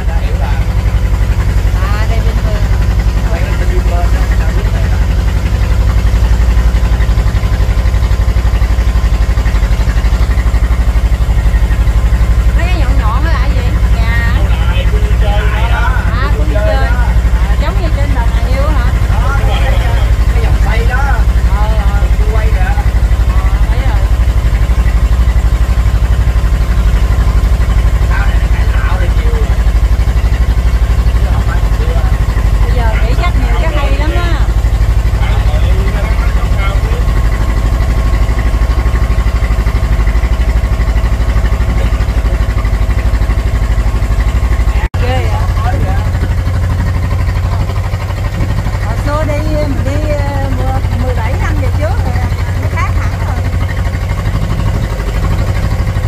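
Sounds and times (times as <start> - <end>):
people talking: 0.0 - 1.0, 1.7 - 5.4, 12.5 - 24.2, 28.0 - 29.9, 31.0 - 37.6, 41.4 - 42.7, 44.7 - 46.4, 47.2 - 53.7
boat engine rumbling: 0.0 - 56.0.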